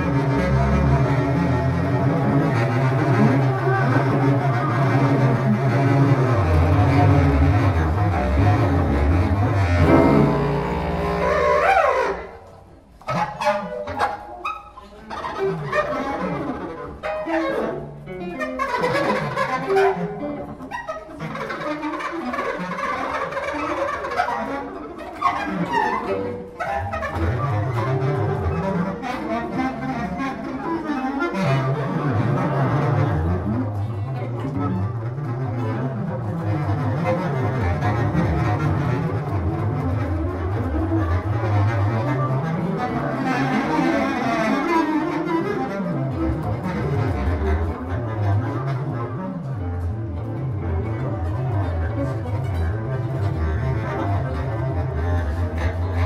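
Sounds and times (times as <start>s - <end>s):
bass clarinet: 0.0s - 56.0s
cello: 0.0s - 56.0s
guitar: 9.6s - 11.3s, 17.1s - 21.1s.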